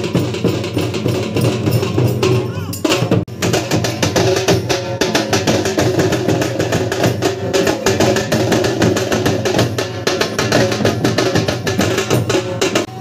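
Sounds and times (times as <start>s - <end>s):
dhol drums beaten with sticks: 0.0s - 13.0s.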